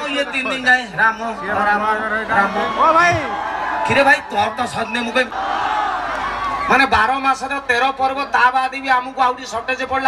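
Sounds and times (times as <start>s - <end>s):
man speaking over loudspeakers: 0.0s - 5.4s, 6.7s - 10.0s.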